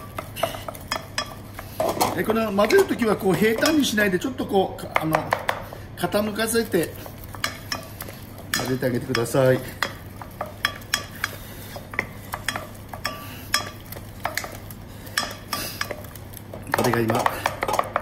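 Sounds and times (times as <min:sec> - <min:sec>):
wooden spatula beating dough: 0:00.0 - 0:03.9, 0:04.8 - 0:18.0.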